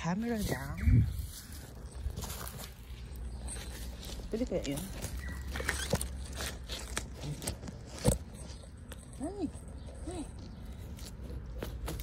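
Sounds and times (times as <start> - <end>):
rustling of dry leaves and grass: 0.0 - 12.0.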